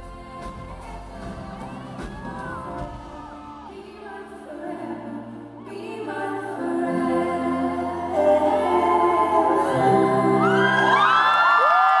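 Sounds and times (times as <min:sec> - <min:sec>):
acoustic guitar and vocal music: 0:00.0 - 0:11.2
audience whooping: 0:10.4 - 0:12.0.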